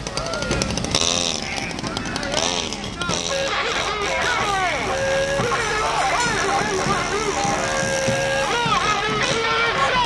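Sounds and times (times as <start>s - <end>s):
people shouting and whooping: 0.0s - 0.8s, 3.0s - 10.0s.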